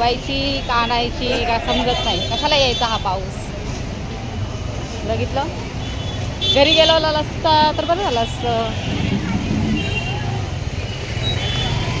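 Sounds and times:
faint voices of passers-by: 0.0 - 12.0
road traffic rumble: 0.0 - 12.0.

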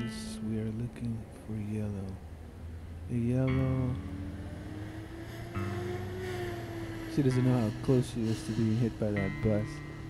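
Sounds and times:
background music: 0.0 - 10.0
vehicle engine hum rising in pitch: 0.0 - 10.0.

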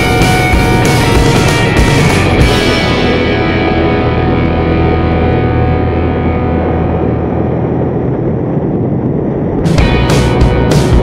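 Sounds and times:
motorcycle engine cruising: 0.0 - 7.6
wind noise on microphone: 0.0 - 11.0.

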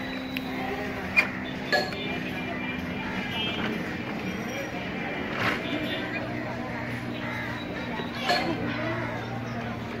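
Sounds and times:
faint voices: 0.0 - 10.0
traffic hum: 0.0 - 10.0.

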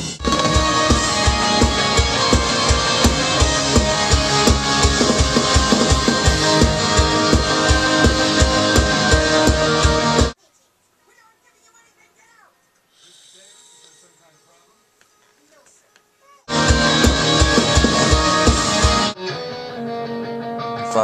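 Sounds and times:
rock music with drums and guitar: 0.0 - 10.4, 16.5 - 21.0.

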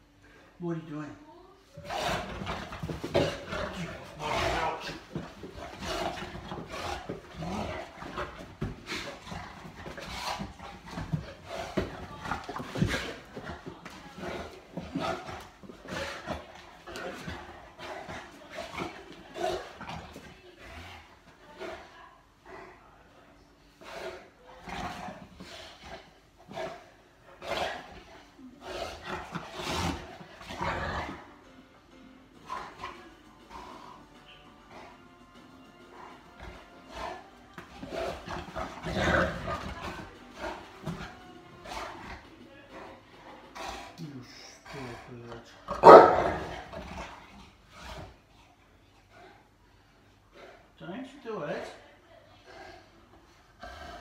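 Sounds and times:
dog growling in play: 1.7 - 22.8, 23.8 - 31.4, 35.9 - 48.3, 52.4 - 54.0.

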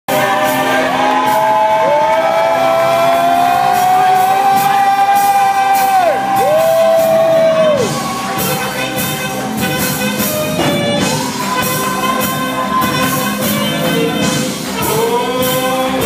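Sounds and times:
gospel music with drums: 0.1 - 16.0.

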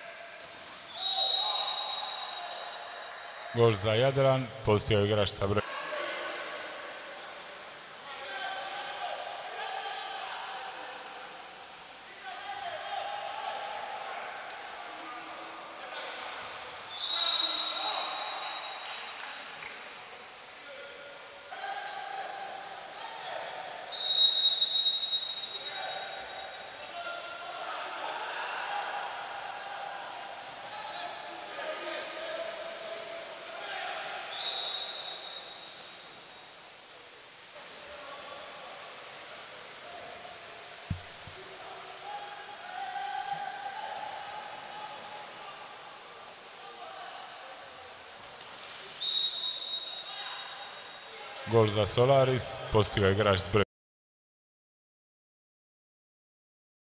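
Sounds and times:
referee's whistle blasts: 0.9 - 2.9, 16.9 - 19.1, 23.9 - 26.7, 34.3 - 36.1, 49.0 - 51.0.

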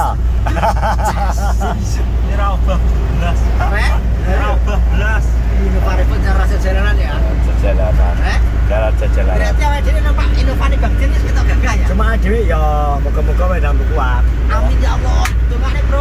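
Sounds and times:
car driving at highway speed: 0.0 - 16.0
men chatting: 0.0 - 16.0.

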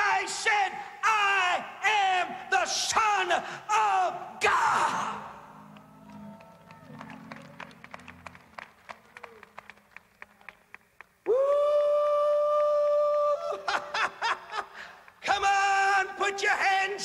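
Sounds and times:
man shouting woo: 0.0 - 5.5, 11.3 - 14.1.

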